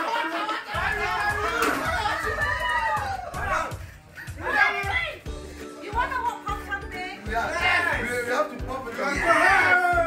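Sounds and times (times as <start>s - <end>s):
people shrieking and shouting: 0.0s - 5.2s, 8.9s - 10.0s
background music: 0.7s - 10.0s.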